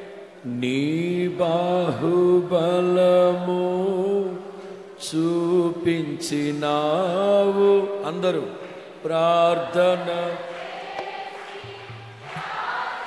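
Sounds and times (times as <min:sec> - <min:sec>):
person singing worship song: 0:00.0 - 0:13.0.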